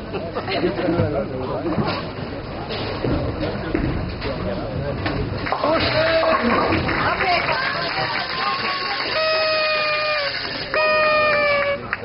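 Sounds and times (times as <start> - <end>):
horn blasts: 9.0 - 12.0.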